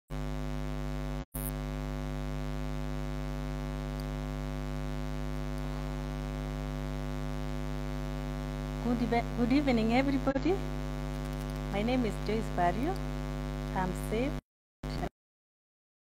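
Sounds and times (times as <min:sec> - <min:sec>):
electrical mains hum: 0:00.2 - 0:15.1.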